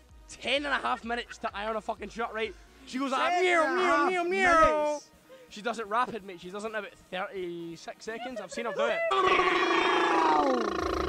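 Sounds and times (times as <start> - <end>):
man yowling like a cat: 8.3 - 11.0
bass beat of music: 10.6 - 11.0.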